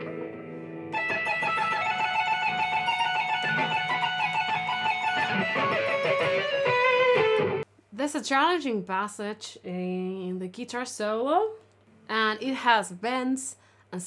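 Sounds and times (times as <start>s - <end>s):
electric guitar tapped notes: 0.0s - 7.6s.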